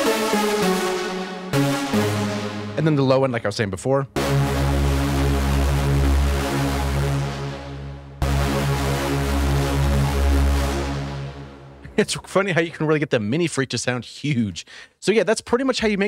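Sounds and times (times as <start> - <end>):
distorted synth lead notes: 0.0 - 3.1, 4.2 - 11.9.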